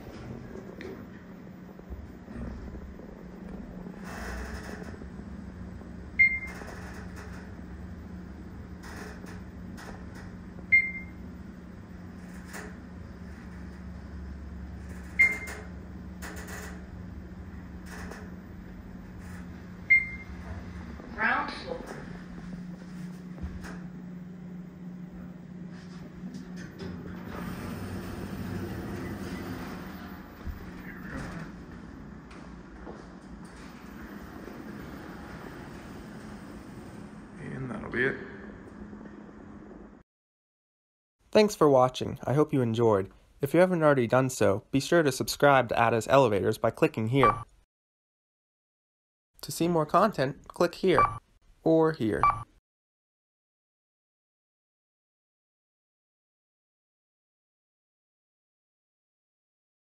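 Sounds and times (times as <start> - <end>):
elevator car gliding: 0.0 - 40.0
elevator hum: 0.0 - 40.0, 50.8 - 51.2
person walking out: 30.2 - 34.0
short high beeps: 51.0 - 51.2.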